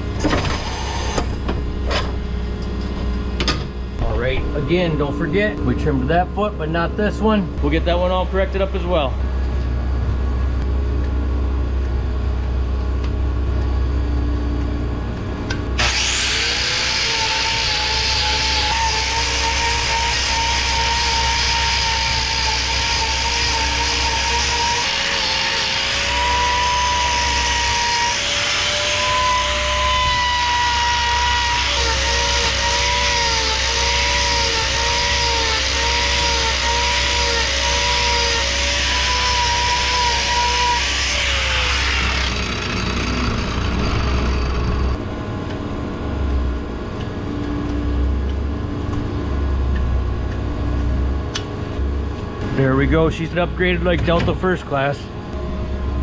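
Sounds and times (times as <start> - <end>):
steady low hum: 0.0 - 56.0
angle grinder grinding hoof: 15.8 - 45.0.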